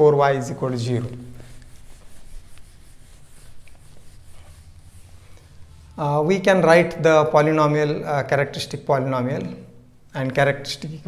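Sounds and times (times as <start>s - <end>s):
eraser rubbing on whiteboard: 0.6s - 6.0s.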